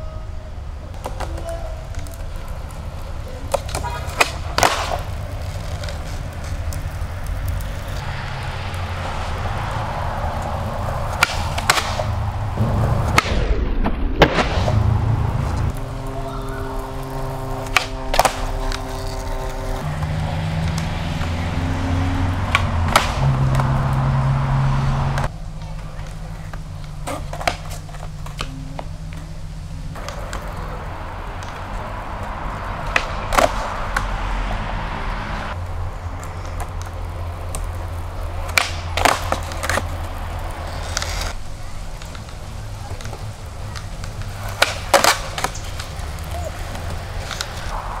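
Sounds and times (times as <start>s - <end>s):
skateboard wheels rolling on pavement: 0.0s - 48.0s
skateboard clacks: 0.8s - 13.4s, 16.7s - 21.3s, 22.4s - 24.0s, 25.1s - 29.4s, 30.0s - 34.2s, 35.6s - 47.8s.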